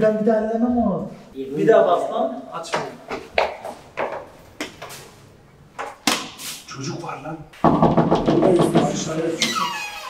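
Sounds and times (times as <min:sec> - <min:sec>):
knocks on a door: 0:07.6 - 0:09.4.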